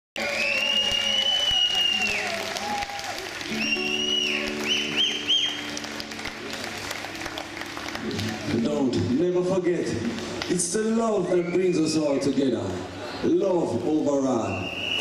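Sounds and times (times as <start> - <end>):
shrill whistles: 0.2 - 2.4, 3.5 - 5.7, 11.2 - 12.0, 14.5 - 15.0
crowd applause: 0.2 - 9.2.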